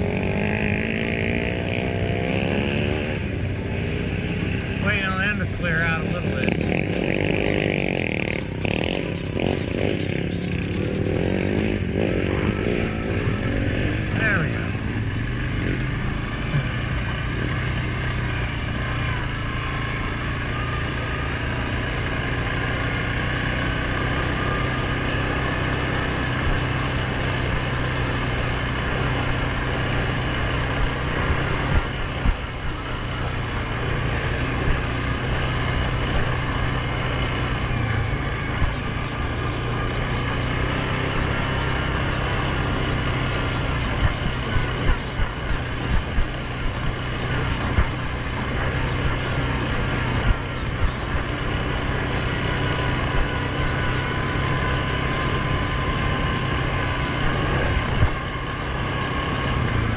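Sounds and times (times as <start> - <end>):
atv engine running: 0.0 - 59.9.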